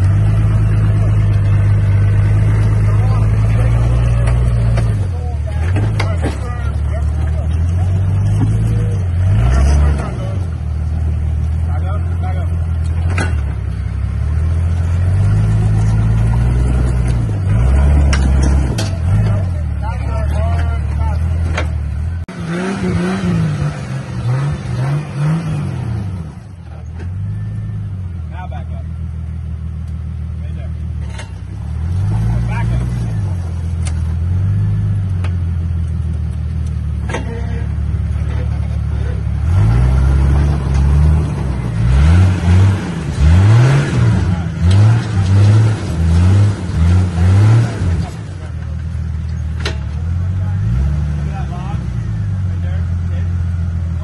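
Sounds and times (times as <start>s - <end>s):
engine idling and revving: 0.0s - 54.0s.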